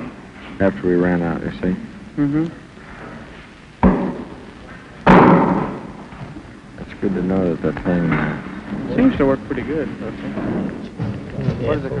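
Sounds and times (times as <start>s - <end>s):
sharp knock: 3.8s - 4.4s, 5.0s - 6.0s
loud bang: 5.0s - 6.1s.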